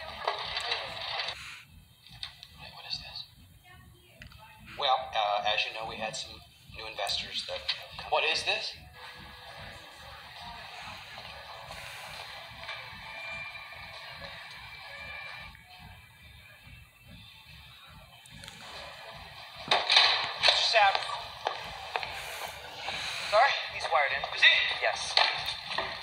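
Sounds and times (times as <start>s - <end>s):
quiet held music: 0.0s - 26.0s.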